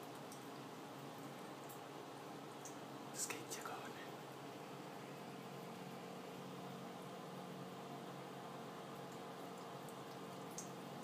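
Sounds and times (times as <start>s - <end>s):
soft hissy sounds: 0.0s - 11.0s.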